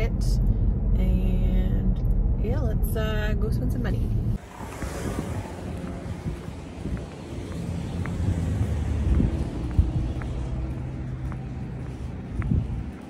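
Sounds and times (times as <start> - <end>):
car cabin road noise: 0.0 - 13.0
wind buffeting microphone: 3.1 - 13.0
footsteps on concrete: 4.4 - 13.0.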